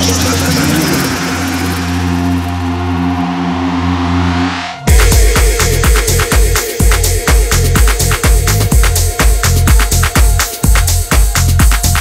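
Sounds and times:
held deep bass chord: 0:00.0 - 0:12.0.

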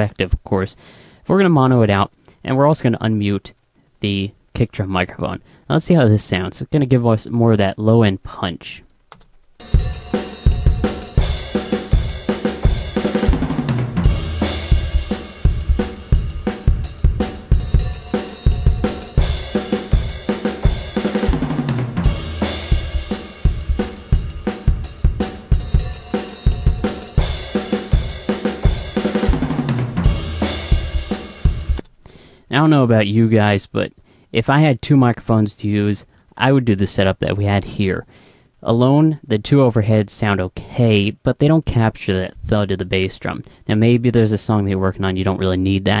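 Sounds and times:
bass drum punch: 0:09.6 - 0:31.8
drum kit playing steady beat: 0:09.6 - 0:31.9.

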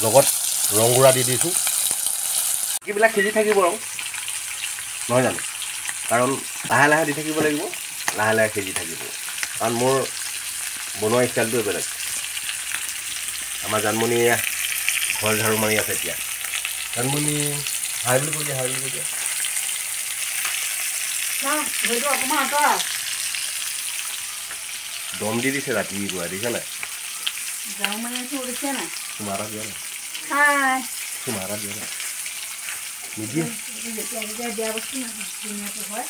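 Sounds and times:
food sizzling in hot oil: 0:00.0 - 0:36.0
voices talking: 0:21.4 - 0:22.9, 0:25.1 - 0:26.8, 0:27.6 - 0:31.8.

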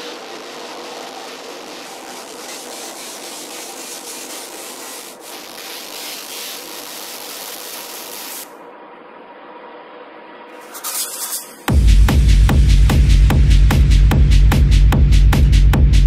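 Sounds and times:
rushing techno noise texture: 0:10.6 - 0:15.3.

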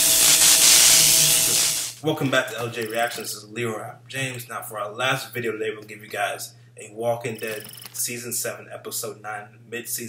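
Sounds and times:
loud steady hiss: 0:00.0 - 0:02.0.

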